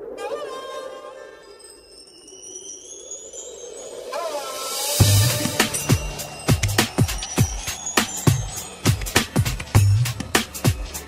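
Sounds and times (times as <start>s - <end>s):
synthesized upward sweep: 4.2s - 11.0s.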